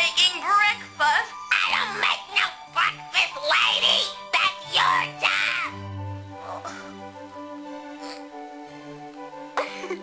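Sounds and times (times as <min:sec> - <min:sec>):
music with held notes: 0:00.0 - 0:10.0
person coughing: 0:09.6 - 0:10.0.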